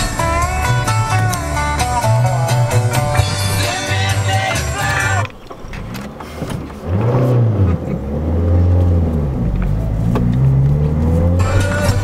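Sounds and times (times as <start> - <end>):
car engine from inside cabin: 0.0 - 12.0.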